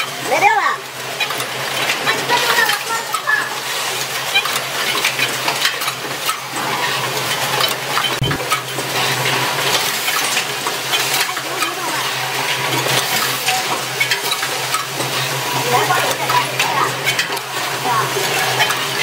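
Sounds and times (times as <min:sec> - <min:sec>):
low machine hum: 0:00.0 - 0:19.0
machine clattering metal clicks: 0:01.1 - 0:19.0.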